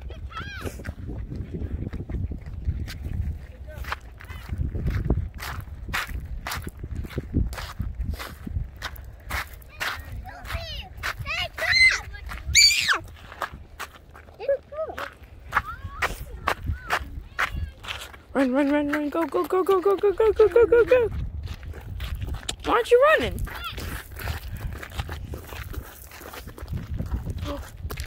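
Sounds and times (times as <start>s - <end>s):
footsteps on gravel: 0.2s - 28.0s.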